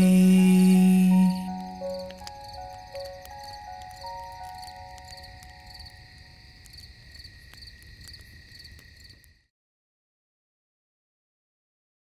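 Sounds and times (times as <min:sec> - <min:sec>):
high insect trill: 0:00.0 - 0:09.4
crickets chirping: 0:00.0 - 0:09.5.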